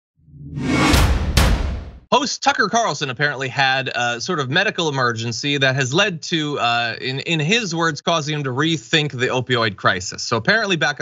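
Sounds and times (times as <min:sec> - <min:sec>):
whoosh with deep rumble: 0:00.3 - 0:01.9
sharp hits: 0:00.4 - 0:02.1.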